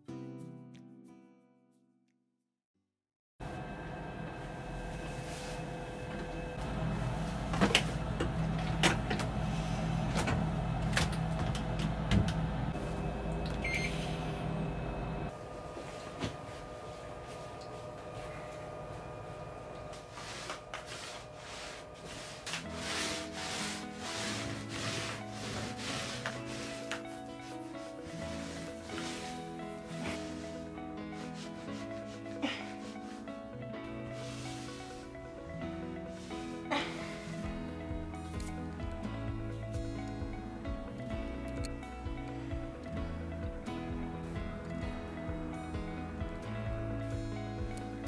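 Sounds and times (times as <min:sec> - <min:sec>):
washing machine motor hum: 0:03.4 - 0:33.3
lint roller rubbing fabric: 0:04.7 - 0:06.0, 0:19.9 - 0:33.5, 0:34.1 - 0:38.8
soft background music: 0:20.0 - 0:48.0.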